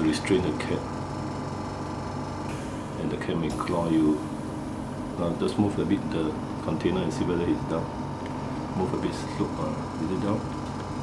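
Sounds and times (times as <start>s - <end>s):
oxygen concentrator humming: 0.0s - 11.0s.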